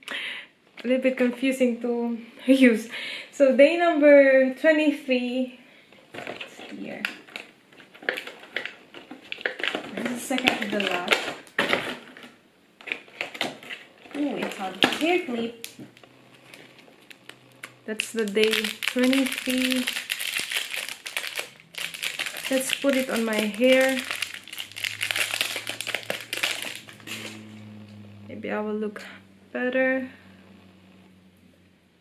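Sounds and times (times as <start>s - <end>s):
wrapping crinkling: 6.1s - 28.0s
cardboard tearing: 7.4s - 27.5s.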